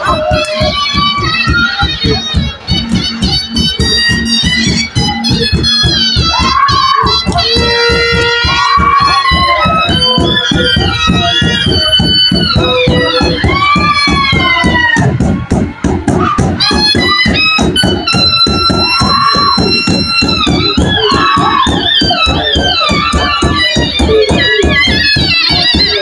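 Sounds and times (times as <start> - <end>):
barrel drums beating: 0.0 - 26.0
high wind instrument melody: 0.0 - 26.0.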